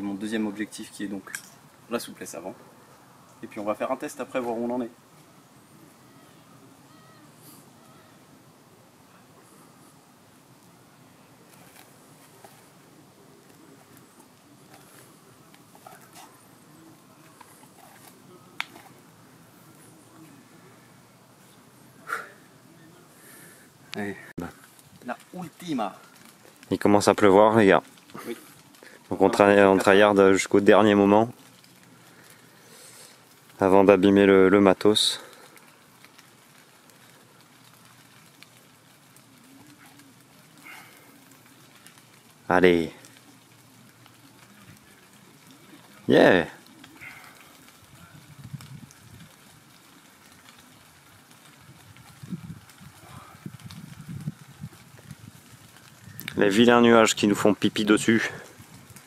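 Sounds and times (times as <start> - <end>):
light rain hiss: 0.0 - 59.0
raindrops ticking: 9.9 - 59.0.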